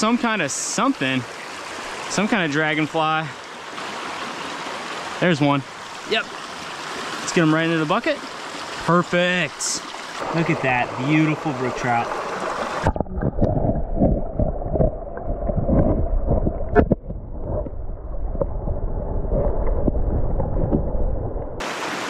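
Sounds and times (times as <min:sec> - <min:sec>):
stream water rushing: 0:00.0 - 0:13.0, 0:21.6 - 0:22.0
underwater gurgling: 0:10.1 - 0:21.6
underwater knocks: 0:12.4 - 0:21.1.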